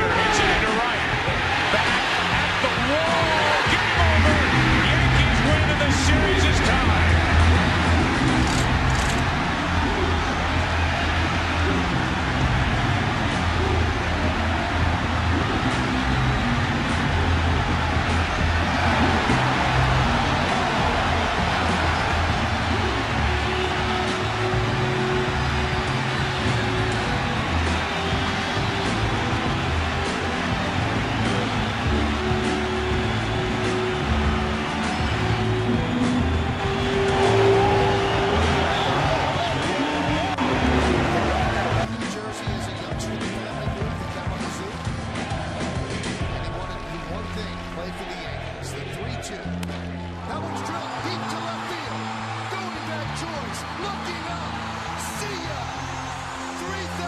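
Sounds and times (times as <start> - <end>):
music playing: 0.0 - 57.0
stadium crowd cheering: 0.0 - 57.0.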